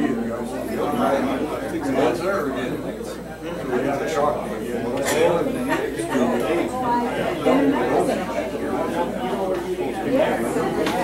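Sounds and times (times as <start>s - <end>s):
people chattering in a hall: 0.0s - 11.0s.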